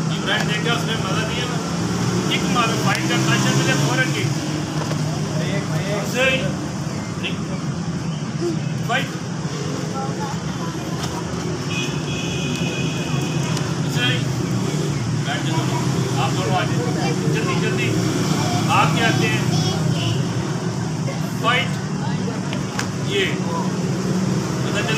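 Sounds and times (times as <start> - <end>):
street traffic hum: 0.0 - 24.9.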